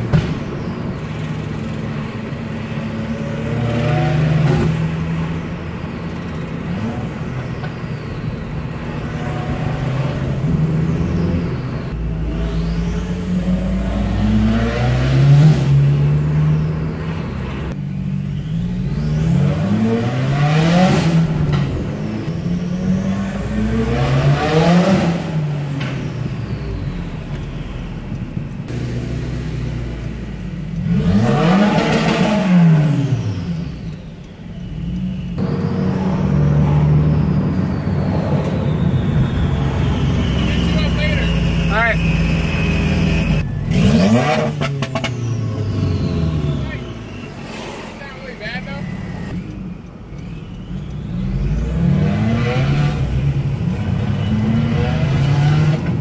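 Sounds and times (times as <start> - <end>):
loud car exhaust revving: 0.0 - 7.5, 8.6 - 56.0.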